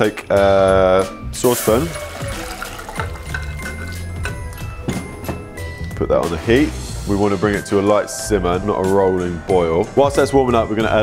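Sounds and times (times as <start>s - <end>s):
background music: 0.0s - 11.0s
liquid pouring into a saucepan: 1.4s - 4.7s.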